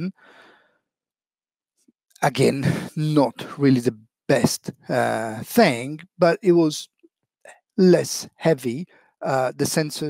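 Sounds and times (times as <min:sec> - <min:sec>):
man speaking: 0:02.2 - 0:06.8, 0:07.8 - 0:10.0.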